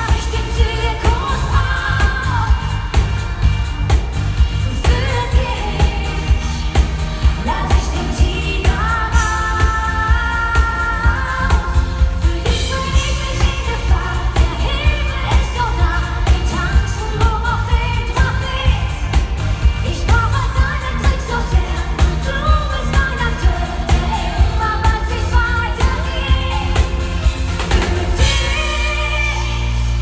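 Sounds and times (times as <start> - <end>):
woman singing: 0.0 - 3.6, 4.6 - 30.0
live pop band: 0.0 - 30.0.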